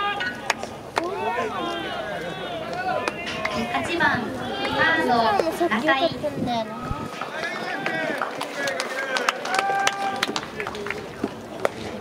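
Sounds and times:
voices calling out in long tones: 0:00.0 - 0:11.3.

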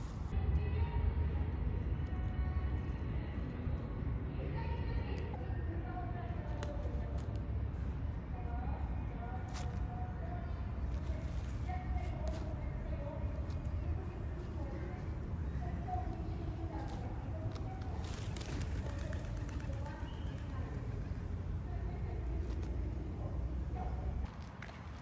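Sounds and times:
city traffic rumble: 0:00.0 - 0:25.0.

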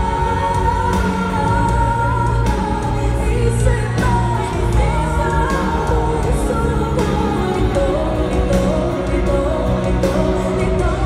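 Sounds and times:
band accompaniment: 0:00.0 - 0:11.0
woman singing pop ballad: 0:00.0 - 0:11.0.

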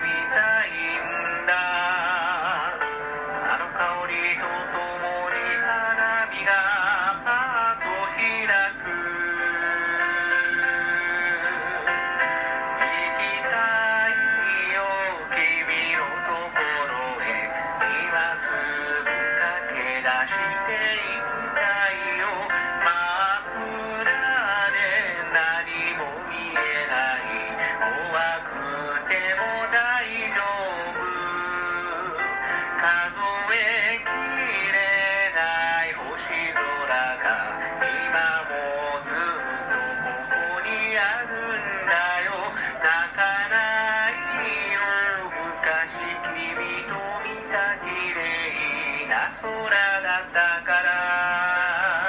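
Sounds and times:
backing track: 0:00.0 - 0:52.0
man singing pop song: 0:00.0 - 0:52.0.

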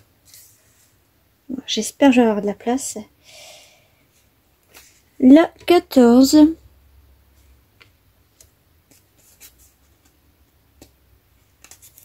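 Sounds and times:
soft taps of paper card: 0:10.8 - 0:11.0.

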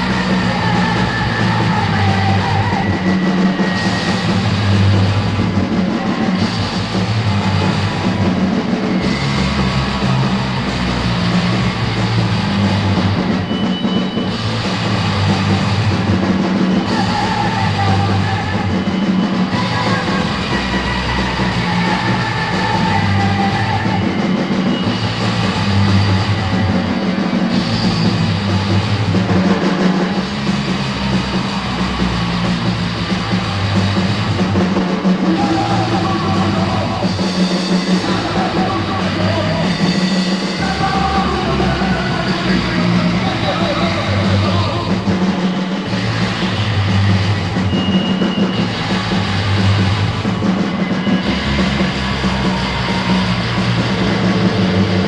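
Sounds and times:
hardcore punk band playing: 0:00.0 - 0:55.0.

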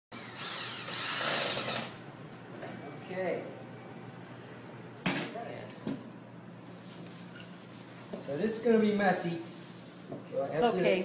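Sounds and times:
small motor whining: 0:00.1 - 0:02.0.

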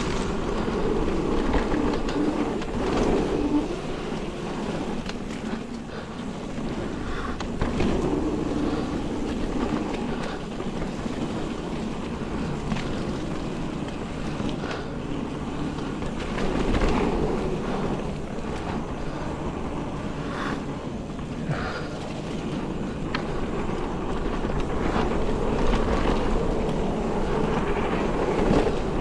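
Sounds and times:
bike clicks and rattles: 0:00.0 - 0:29.0
bike tyres rumbling on dirt: 0:00.0 - 0:29.0.

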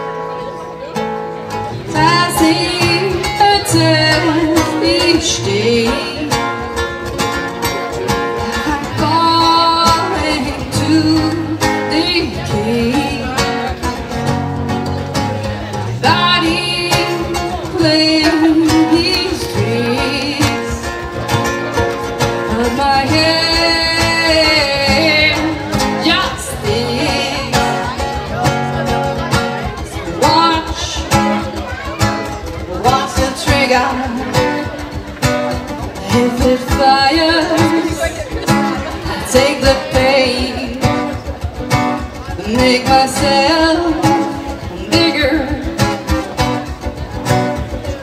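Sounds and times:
acoustic guitars playing: 0:00.0 - 0:48.0.

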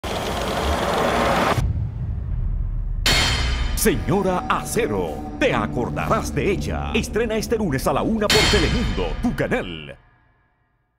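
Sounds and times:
low rumble: 0:01.1 - 0:09.6.

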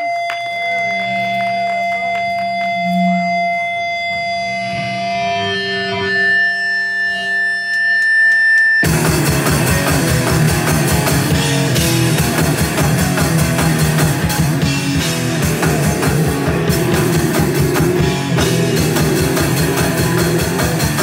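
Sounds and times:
electric guitar feedback: 0:00.0 - 0:21.0
rock band with drums: 0:07.9 - 0:21.0.

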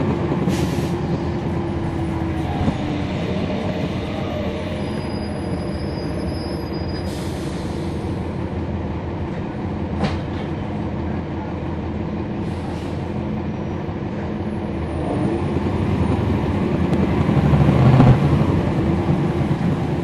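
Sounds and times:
bus diesel engine drone: 0:00.0 - 0:20.0.

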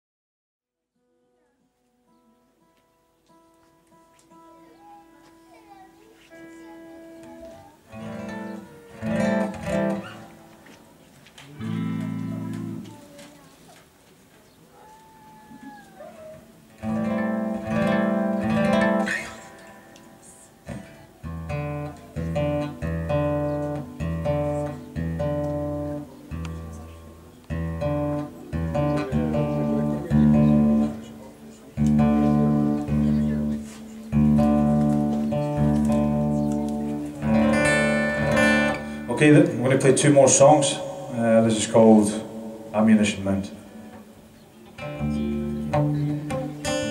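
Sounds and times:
acoustic guitar strumming: 0:03.3 - 0:10.8, 0:11.5 - 0:12.9, 0:16.5 - 0:46.9
low bass line: 0:27.5 - 0:31.1, 0:31.8 - 0:39.2.

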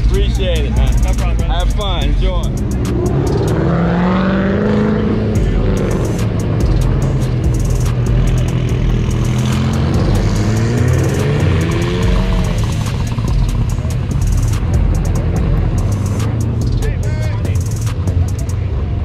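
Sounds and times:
sports cars driving past: 0:00.0 - 0:19.0.

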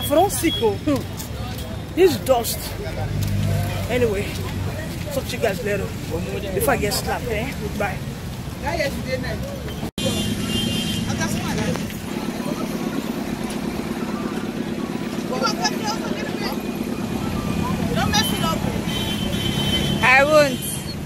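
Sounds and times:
engines running: 0:00.0 - 0:08.7, 0:09.6 - 0:21.0
people's voices: 0:00.0 - 0:21.0.

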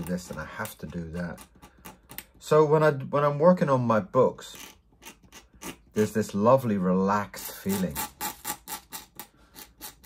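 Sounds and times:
pen nib scratching paper: 0:04.6 - 0:06.1, 0:07.6 - 0:10.0.

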